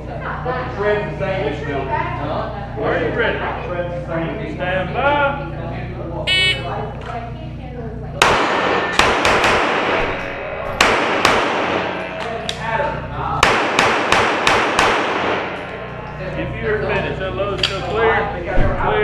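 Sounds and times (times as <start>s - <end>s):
shot timer high beep: 6.3s - 6.7s
pistol shots echoing: 8.2s - 12.7s, 13.4s - 16.0s.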